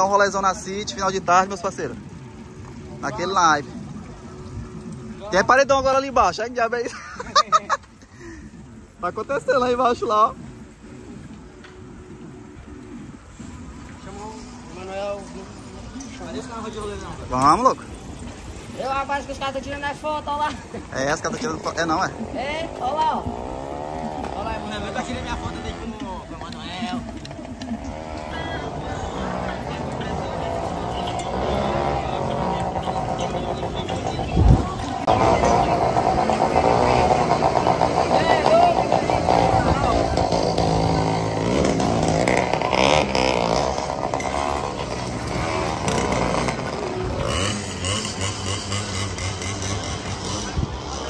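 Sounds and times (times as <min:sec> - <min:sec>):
motorcycle engines running: 0:00.0 - 0:51.0.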